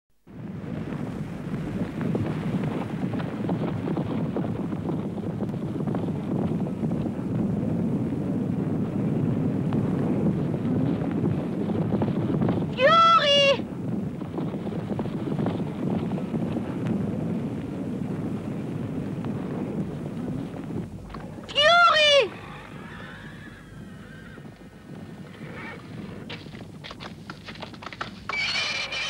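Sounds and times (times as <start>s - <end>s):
horses galloping hoofbeats: 0.4s - 29.0s
horse whinnying: 21.3s - 25.9s, 28.0s - 29.0s.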